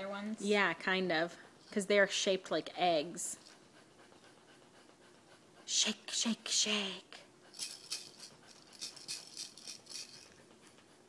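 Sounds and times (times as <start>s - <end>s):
egg shaker rattling: 7.5s - 10.5s.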